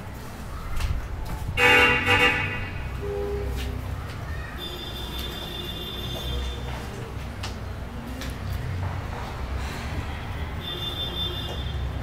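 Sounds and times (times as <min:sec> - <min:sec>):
vehicle horn honking: 0:01.6 - 0:03.6.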